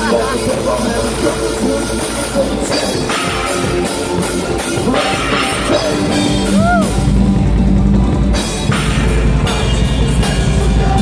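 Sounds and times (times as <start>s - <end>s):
heavy metal band playing live: 0.0s - 11.0s.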